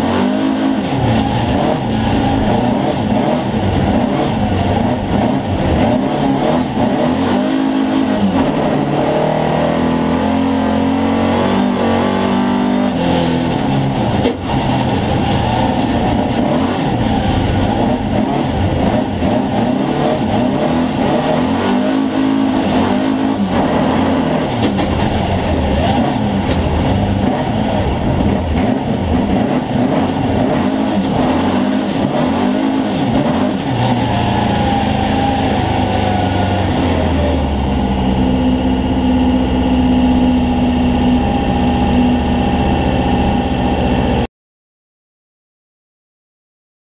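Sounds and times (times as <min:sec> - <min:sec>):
car engine revving: 0:00.0 - 0:44.3.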